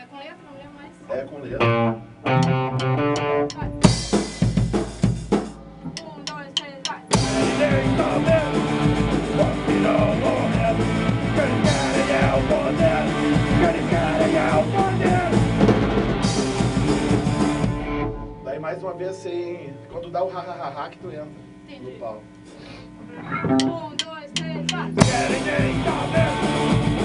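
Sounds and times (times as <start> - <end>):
punk rock band playing: 1.6 - 18.6, 23.3 - 27.0
drumsticks clicking count-in: 2.3 - 3.8, 5.9 - 7.1, 23.5 - 24.9
person singing: 5.9 - 15.5, 25.0 - 26.7.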